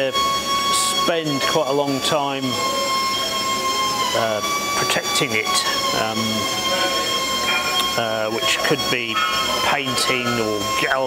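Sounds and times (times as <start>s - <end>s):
machinery high-pitched whine: 0.0s - 11.0s.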